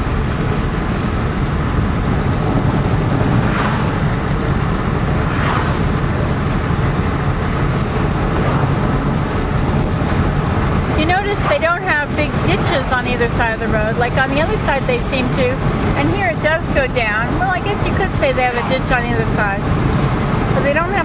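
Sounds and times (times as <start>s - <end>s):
car engine and road noise: 0.0s - 21.0s.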